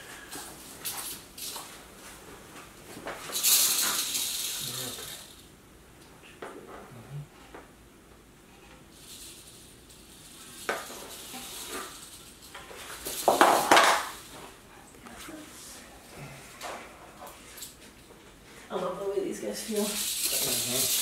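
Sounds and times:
rattlesnake rattling: 3.2 - 5.5, 8.9 - 14.4, 19.7 - 21.0.

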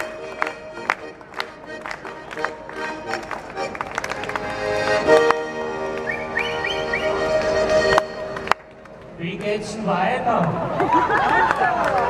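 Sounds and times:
accordion playing held chords: 0.0 - 8.8.

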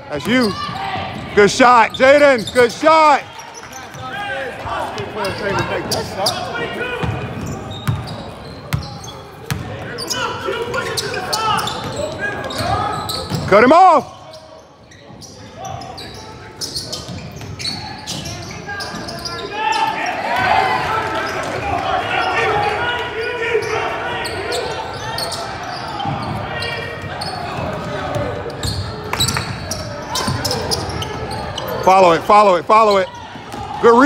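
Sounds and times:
echoing voices chatter: 0.0 - 34.0.

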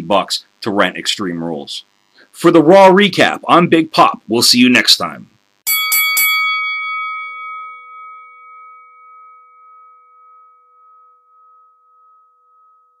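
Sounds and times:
struck bell ringing: 5.7 - 13.0.

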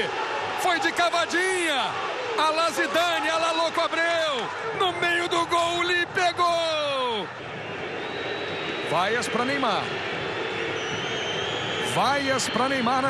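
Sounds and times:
stadium crowd noise: 0.0 - 13.0.

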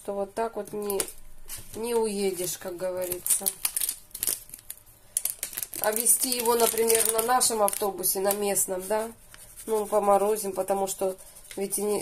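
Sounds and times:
person speaking: 0.0 - 3.9, 5.7 - 12.0.

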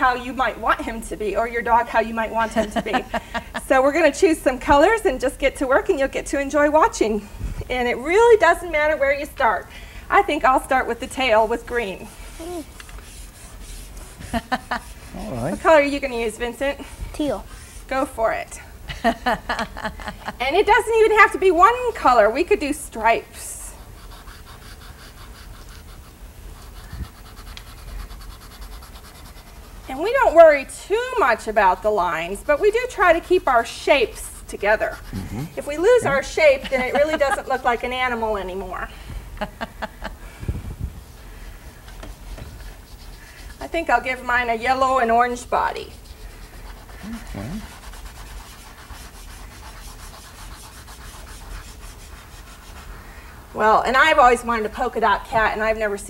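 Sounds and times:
pastel scratching on paper: 11.8 - 16.2, 23.4 - 38.6, 41.9 - 53.1.

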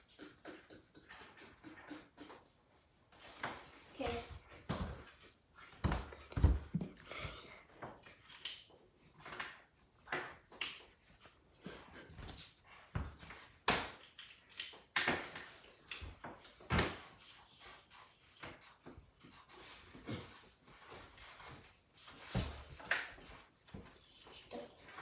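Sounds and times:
markers scratching on paper: 0.0 - 5.7, 7.9 - 25.0.

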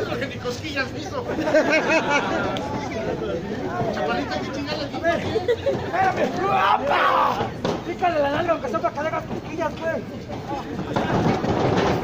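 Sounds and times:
crowd shouting and chattering: 0.0 - 12.0.

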